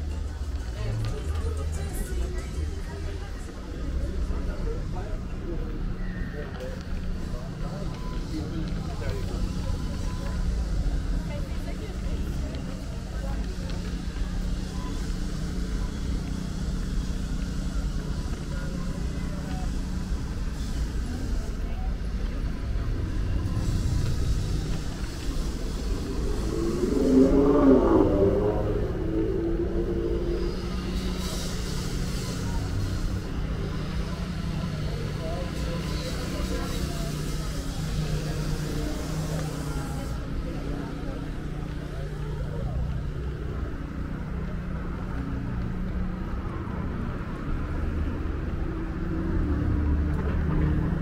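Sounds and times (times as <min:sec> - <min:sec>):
close passer-by voice: 0:00.0 - 0:51.0
pedestrians talking: 0:00.0 - 0:51.0
traffic rumble: 0:00.0 - 0:51.0.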